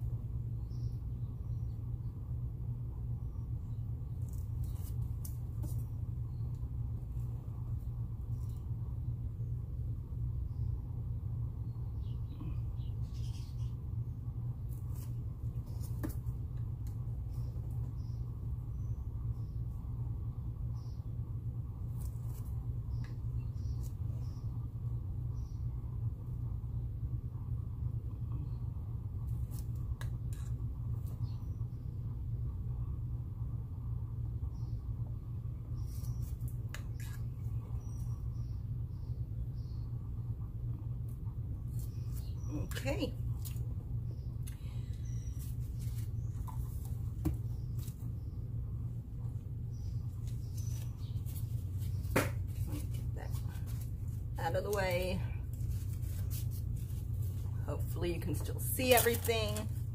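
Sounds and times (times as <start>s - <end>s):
low room hum: 0.0s - 59.9s.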